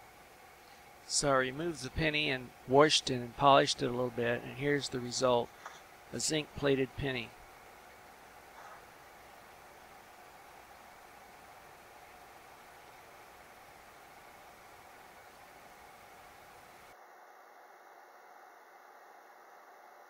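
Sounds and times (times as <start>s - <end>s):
faint steady hiss: 0.0s - 20.0s.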